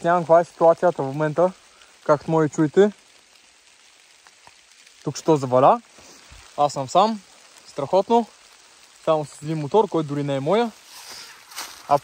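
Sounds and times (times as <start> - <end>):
light rain hiss: 0.0 - 12.0.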